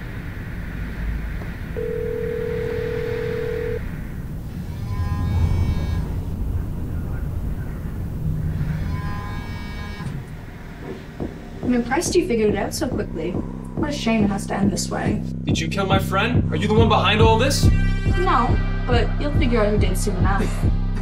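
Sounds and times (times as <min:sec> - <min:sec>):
low rumbling drone: 0:00.0 - 0:16.6
held tone: 0:01.8 - 0:03.8.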